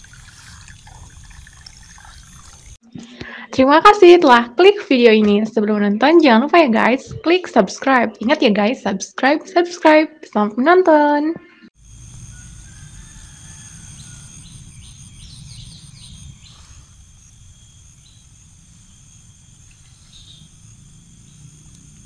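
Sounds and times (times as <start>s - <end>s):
high-pitched insect trilling: 0.0s - 2.8s, 11.8s - 22.0s
quick chirps: 11.8s - 22.0s.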